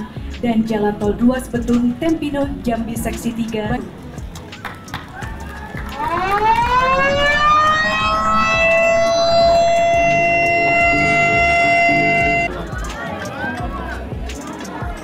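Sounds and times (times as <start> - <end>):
siren winding up: 6.0 - 12.5.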